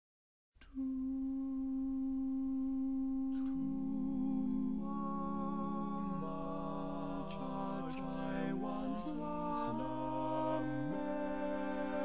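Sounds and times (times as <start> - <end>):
male voices singing long notes: 0.6 - 12.0.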